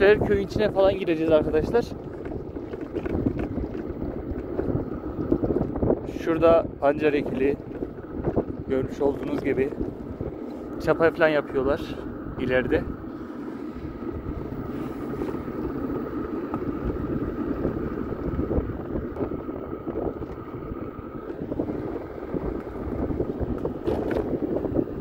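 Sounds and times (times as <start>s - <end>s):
faint steady whine: 0.0s - 25.0s
wind rushing over microphone: 0.0s - 25.0s
tyre rumble on rough asphalt: 1.3s - 6.2s, 14.0s - 25.0s.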